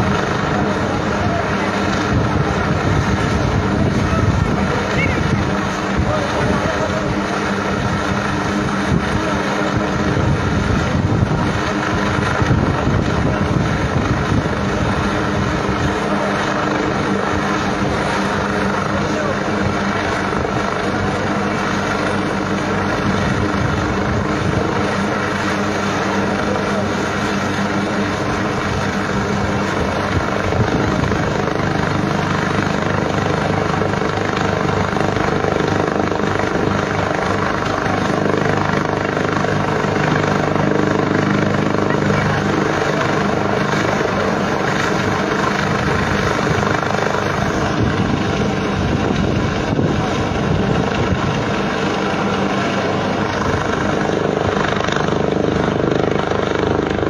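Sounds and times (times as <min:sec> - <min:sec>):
people's voices: 0:00.0 - 0:55.5
distant helicopter hovering: 0:00.0 - 0:57.0.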